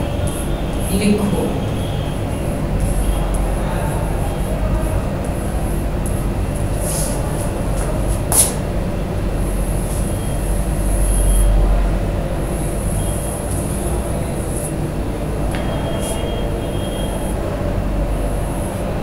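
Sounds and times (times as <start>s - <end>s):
constant hum: 0.0s - 19.0s
low rumble and hiss: 0.0s - 19.0s
chalk scraping on blackboard: 5.2s - 8.6s.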